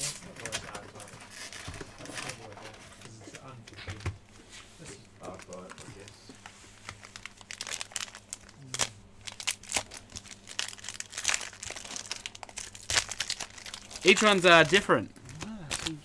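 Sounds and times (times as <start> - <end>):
cellophane wrapper crinkling: 5.2 - 6.2, 6.8 - 16.0.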